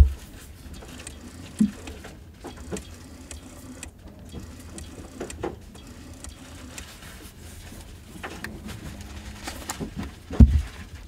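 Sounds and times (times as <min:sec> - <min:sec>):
small clicks and ticks: 0:00.7 - 0:07.0.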